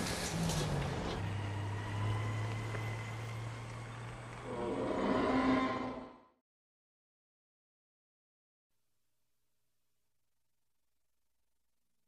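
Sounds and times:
dinosaur roar: 4.4s - 6.3s.

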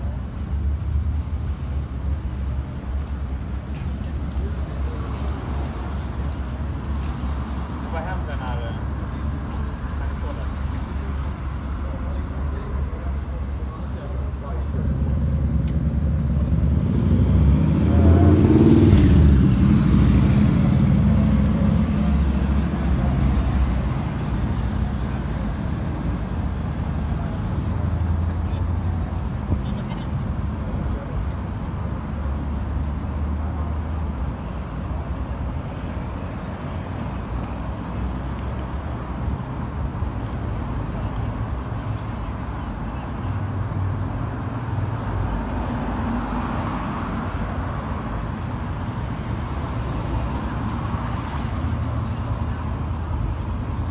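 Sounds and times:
passing cars rumble: 0.0s - 53.9s
vehicle passing close: 14.7s - 23.4s.

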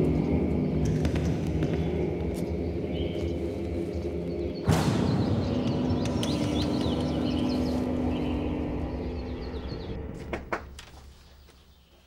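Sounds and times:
sustained low music chord: 0.0s - 10.2s
birds chirping: 0.0s - 12.0s.

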